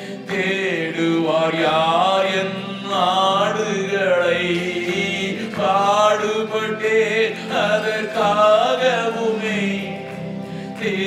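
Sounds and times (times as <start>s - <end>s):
man singing a chant into a microphone: 0.2s - 10.0s.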